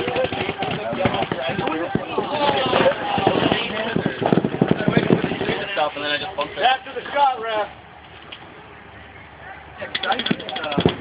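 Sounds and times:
paintball marker firing rapidly: 0.0 - 4.9, 10.0 - 11.0
people talking: 0.0 - 7.8, 8.5 - 11.0.

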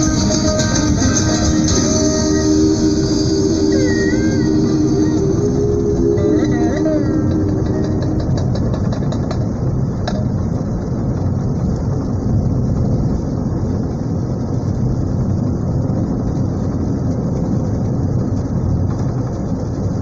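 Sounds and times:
tyres rumbling on dirt road: 0.0 - 20.0
small clicks and rattles: 7.3 - 10.4.

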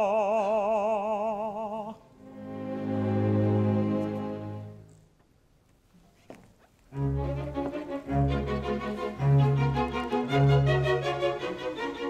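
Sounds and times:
orchestra strings playing: 2.2 - 5.0, 6.9 - 12.0.

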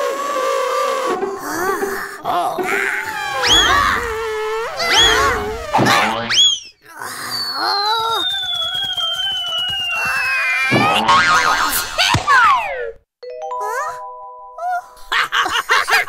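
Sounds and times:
wavering wail: 0.0 - 6.3
cartoon characters yelping: 2.3 - 8.2, 10.0 - 13.0
long falling whistle: 7.3 - 10.7.

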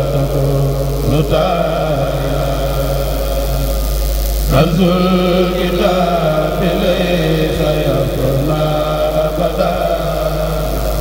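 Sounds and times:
male chorus chanting: 0.0 - 3.7, 4.5 - 11.0
constant low hum: 0.0 - 11.0.

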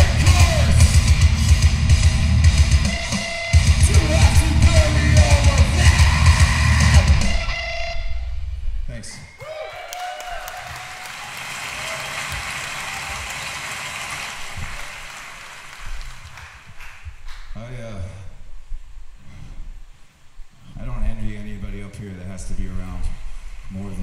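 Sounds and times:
hardcore punk band playing: 0.0 - 7.5
scattered shouts: 3.8 - 7.2
audience cheering and clapping: 9.4 - 17.4.

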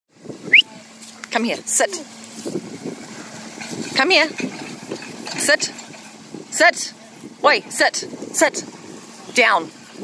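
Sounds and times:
truck engine idling: 0.2 - 10.0.

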